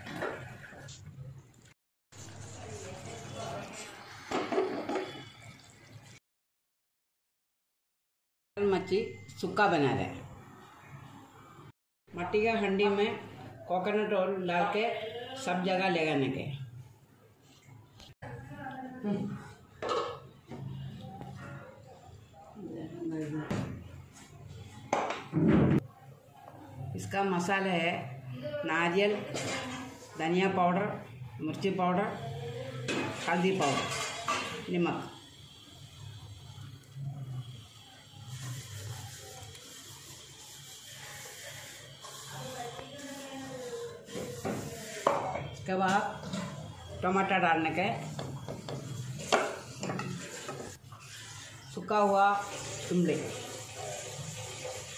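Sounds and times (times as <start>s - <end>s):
kitchen utensils knocking and scraping: 4.3s - 5.3s, 29.2s - 29.9s, 32.9s - 34.8s, 48.0s - 50.8s.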